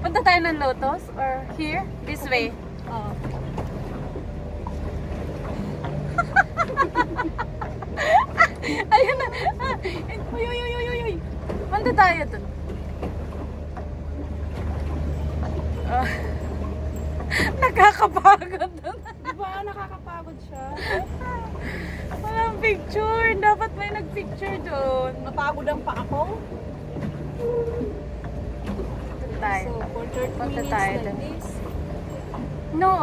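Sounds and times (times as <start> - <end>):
boat rumble: 0.0 - 33.0.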